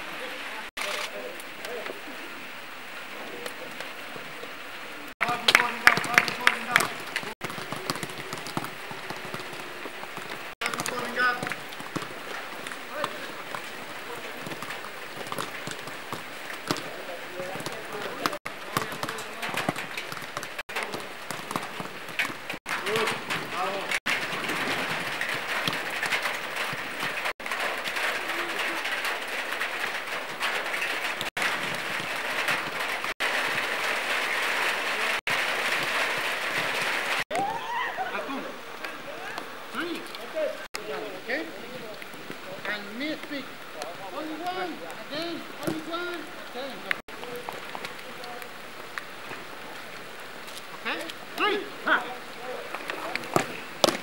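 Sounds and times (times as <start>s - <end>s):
light rain hissing: 0.0s - 54.0s
players calling: 0.0s - 54.0s.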